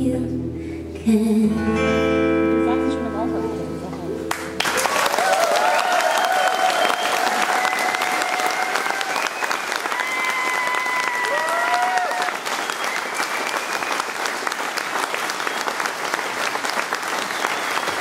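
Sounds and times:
audience applauding: 4.3 - 18.0
cheers and whoops: 4.6 - 13.8.

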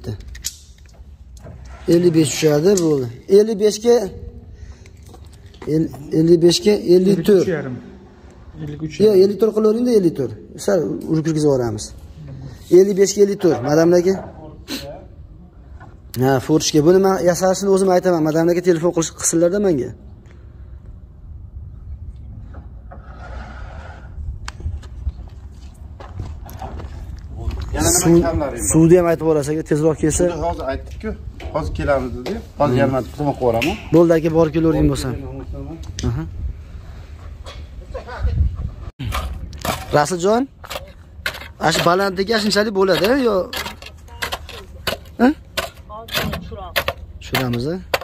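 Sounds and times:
wind rumble on microphone: 20.9 - 28.8, 34.4 - 39.6.

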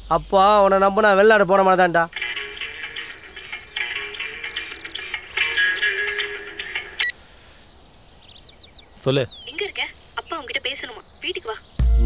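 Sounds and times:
mobile phone ringtone: 2.1 - 7.2.

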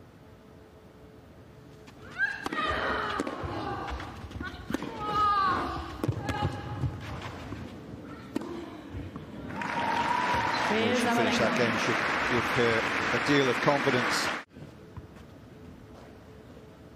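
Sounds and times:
racket striking tennis ball: 2.4 - 5.3
crowd applause: 9.5 - 14.4.

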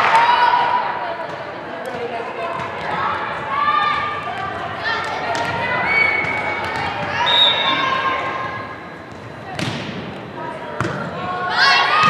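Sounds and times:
people calling out in a gym: 0.0 - 9.1, 10.3 - 12.0.

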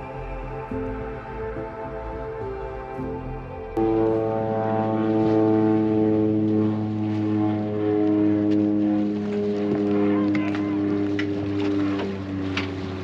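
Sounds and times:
music: 0.0 - 6.6, 9.1 - 13.0
boat engine droning: 0.0 - 13.0.

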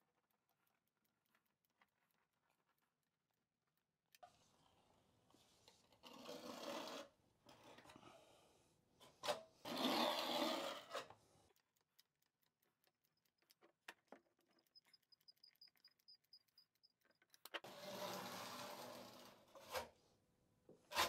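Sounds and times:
faint clicks: 11.5 - 17.6
faint high ticks: 11.5 - 17.6.

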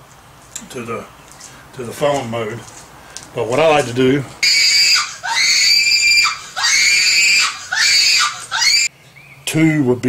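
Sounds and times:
man screaming in falsetto: 4.4 - 8.9.

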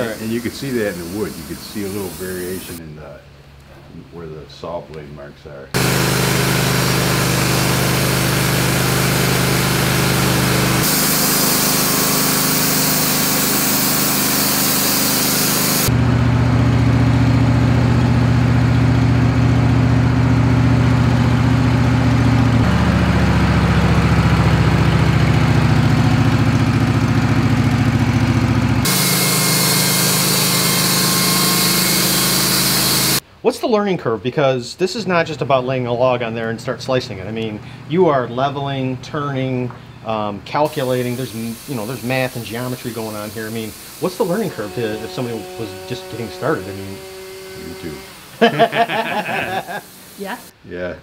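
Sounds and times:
sawmill engine running: 0.0 - 2.8, 5.7 - 33.2, 40.5 - 50.5
band blade sawing log: 5.8 - 15.9, 28.8 - 33.2, 40.7 - 50.3.

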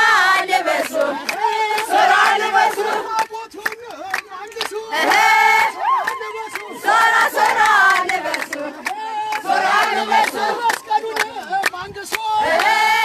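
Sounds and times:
crowd shouting and cheering: 0.0 - 13.0
hand claps: 0.7 - 13.0.

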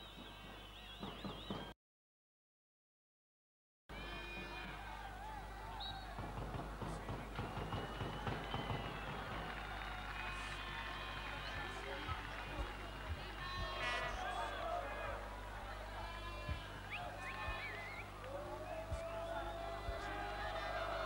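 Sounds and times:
crowd voices: 3.9 - 21.0
stadium music: 4.2 - 21.0
low tape hum: 4.5 - 21.0.

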